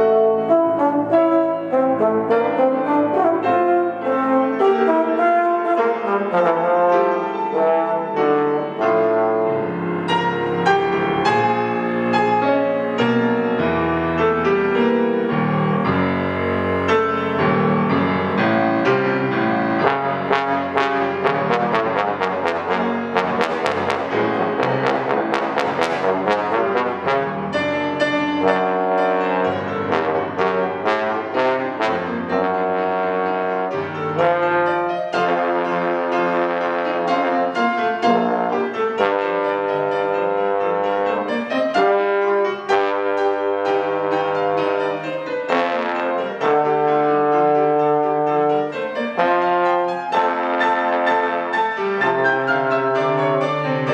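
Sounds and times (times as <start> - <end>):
trombone: 0.0 - 12.7, 17.8 - 53.9
piano: 0.0 - 53.9.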